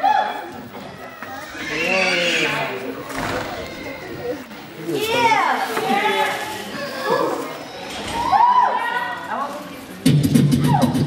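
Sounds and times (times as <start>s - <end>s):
high sliding cries: 1.3s - 4.2s
people shouting and whooping: 8.0s - 9.2s.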